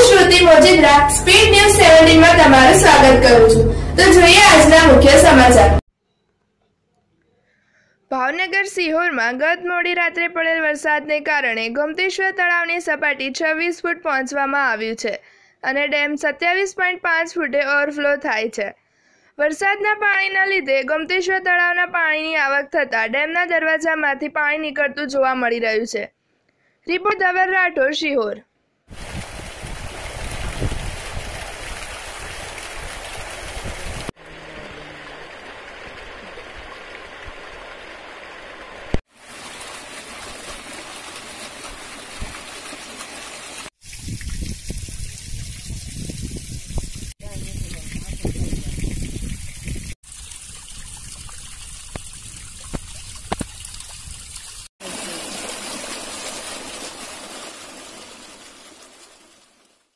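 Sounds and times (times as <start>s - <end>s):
water jetting through sluice gate: 28.9s - 43.7s, 52.7s - 59.8s.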